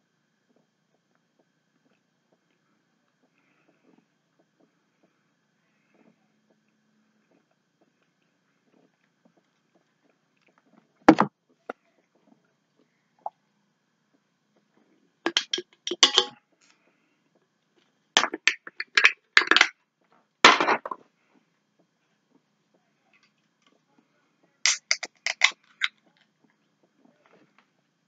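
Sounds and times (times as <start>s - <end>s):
crinkling handling noise: 24.7s - 27.8s.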